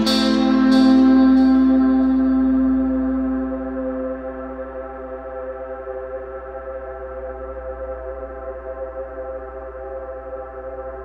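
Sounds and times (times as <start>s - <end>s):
electric guitar reverb pad: 0.0s - 11.0s
low hum: 0.0s - 11.0s.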